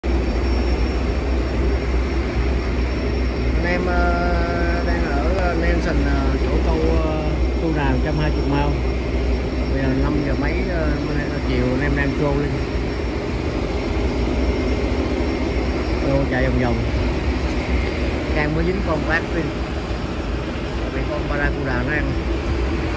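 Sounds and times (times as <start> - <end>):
outboard motor running: 0.0 - 22.9.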